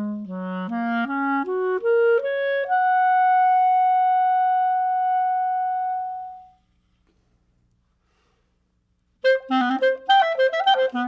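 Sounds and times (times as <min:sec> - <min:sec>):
solo clarinet playing: 0:00.0 - 0:06.6, 0:09.2 - 0:11.0.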